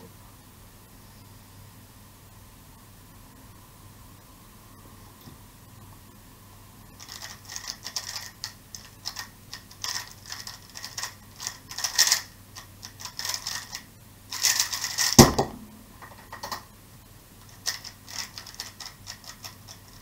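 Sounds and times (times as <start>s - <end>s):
puzzle cube clicking turns: 7.0s - 15.2s, 17.5s - 20.0s.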